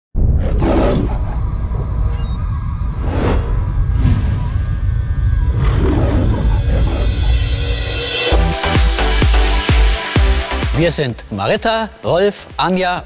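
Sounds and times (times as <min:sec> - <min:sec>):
lion roar sound effects: 0:00.2 - 0:02.0, 0:05.5 - 0:07.8
heavy low rumble: 0:00.2 - 0:08.5
dramatic music: 0:03.9 - 0:12.6.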